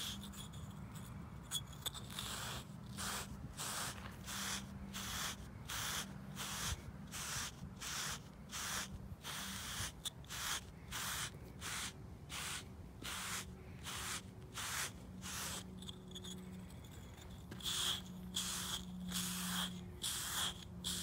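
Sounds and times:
grooming block scraping horse coat: 0.0 - 21.0
low steady hum: 0.0 - 21.0.

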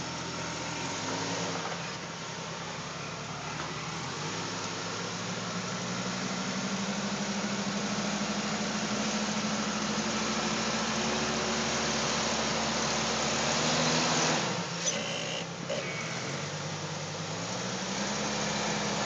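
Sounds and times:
car engine under load: 0.0 - 19.0.

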